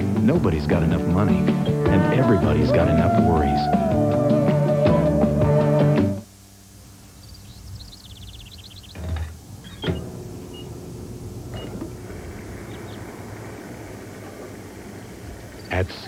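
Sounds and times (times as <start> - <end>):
fuel pump mechanical whir: 8.8 - 16.0.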